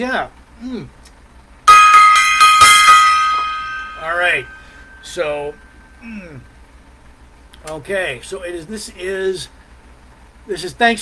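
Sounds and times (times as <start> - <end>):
small gong ringing: 1.6 - 6.0.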